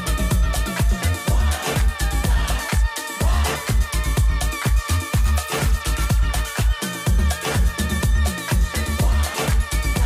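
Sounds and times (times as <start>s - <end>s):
disco house music: 0.0s - 10.0s
kick drum: 0.0s - 10.0s.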